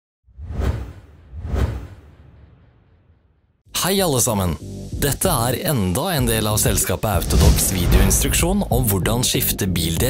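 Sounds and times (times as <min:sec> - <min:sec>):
whoosh sound effects: 0:07.1 - 0:08.8.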